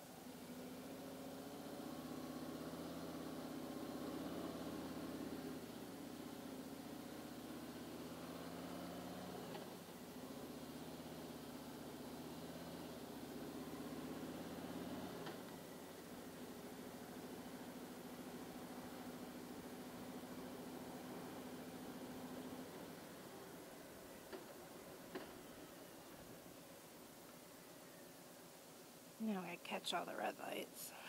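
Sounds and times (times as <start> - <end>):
motorcycle engine shifting gears: 0.5 - 23.5.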